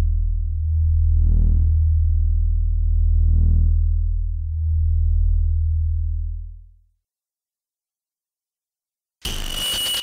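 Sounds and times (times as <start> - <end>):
low electronic drone: 0.0 - 6.8.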